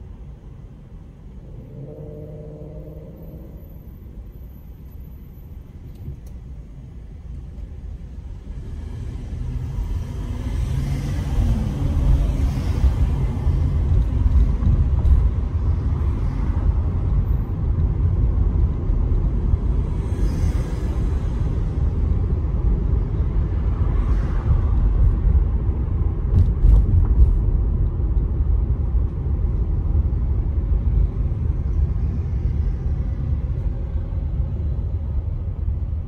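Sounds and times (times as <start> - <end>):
car engine and road noise: 0.0 - 36.0.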